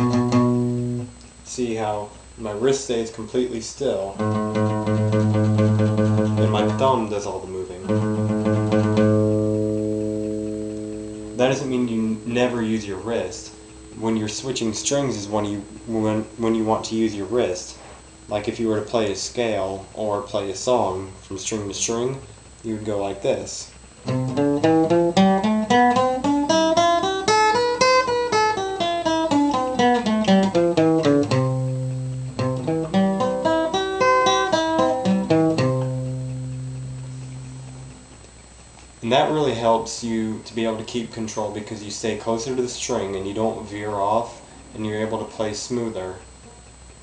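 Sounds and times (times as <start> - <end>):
acoustic guitar low note: 0.0 - 1.2, 4.2 - 7.0, 7.8 - 19.6, 24.0 - 38.1.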